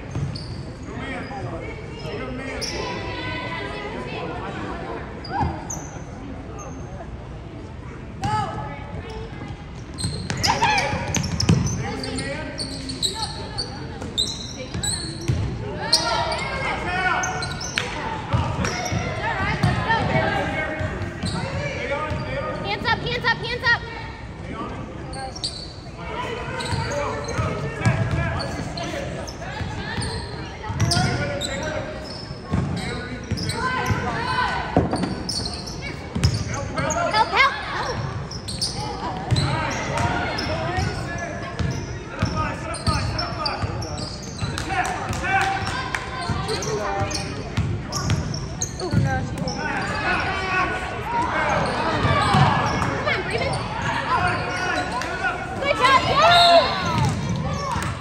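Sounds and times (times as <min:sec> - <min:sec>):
voices echoing in gym: 0:00.0 - 0:58.0.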